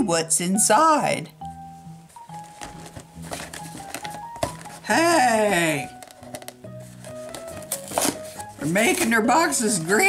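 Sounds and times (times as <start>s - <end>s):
quiet background music: 0.0s - 10.0s
person exclaiming: 4.8s - 5.9s.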